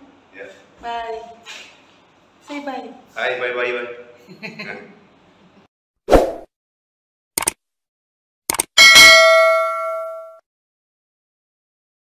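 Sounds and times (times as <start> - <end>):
bright bell ding: 8.8 - 10.4.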